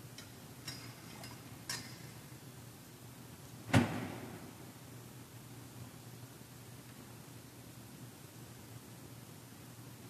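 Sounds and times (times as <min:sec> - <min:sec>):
low steady hum: 0:00.0 - 0:10.0
light metallic clinks: 0:00.1 - 0:02.2.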